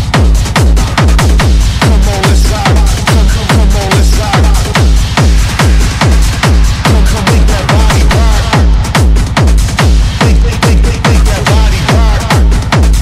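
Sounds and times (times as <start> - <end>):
techno kick drum: 0.0 - 13.0.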